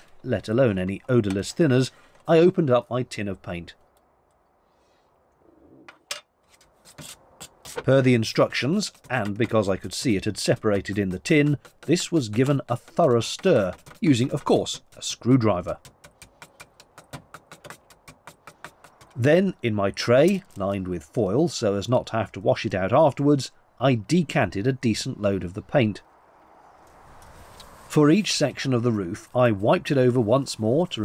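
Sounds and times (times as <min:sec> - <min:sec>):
screwdriver knocking in paint tin: 0:08.8 - 0:19.2.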